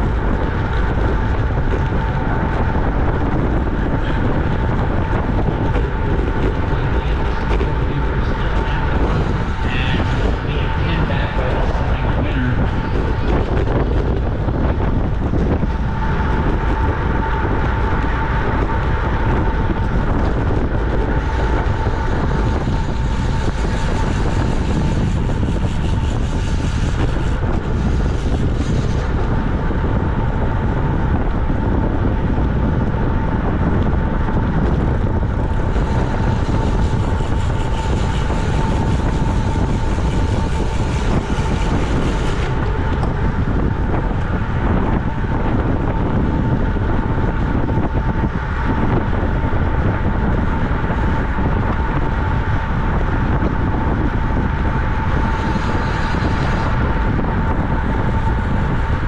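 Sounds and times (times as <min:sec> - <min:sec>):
bike tyre noise on asphalt: 0:00.0 - 0:59.0
thin steady whine: 0:00.0 - 0:59.0
wind rushing over microphone: 0:00.0 - 0:59.0.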